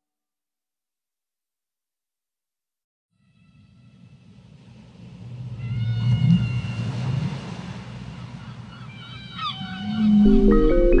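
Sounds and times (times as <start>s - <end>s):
low rumbling drone: 9.9s - 11.0s
short gliding synth pitches: 10.0s - 11.0s.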